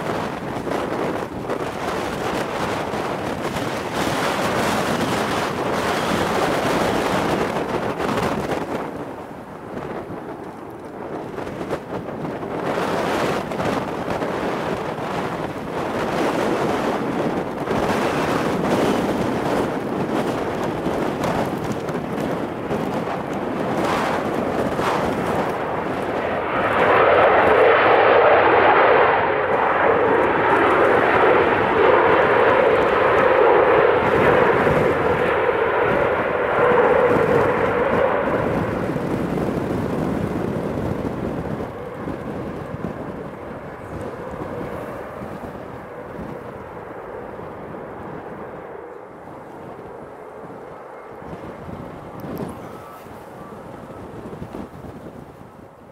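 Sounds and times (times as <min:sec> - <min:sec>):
jet engines reverse thrust roar: 0:00.0 - 0:55.9.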